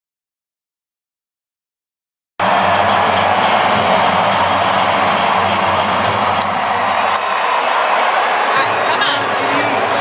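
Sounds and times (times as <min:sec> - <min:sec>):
music over pa system: 0:02.4 - 0:07.1
loud arena crowd din: 0:02.4 - 0:10.0.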